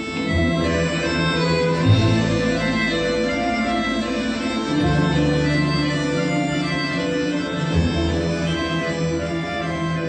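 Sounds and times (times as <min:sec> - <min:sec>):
folk instrument orchestra playing: 0:00.0 - 0:10.0.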